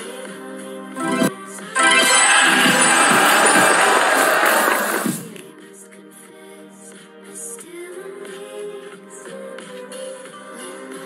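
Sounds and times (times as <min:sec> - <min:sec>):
jingly glittering sound effect: 0:01.0 - 0:04.6
pop dance music: 0:01.0 - 0:05.3.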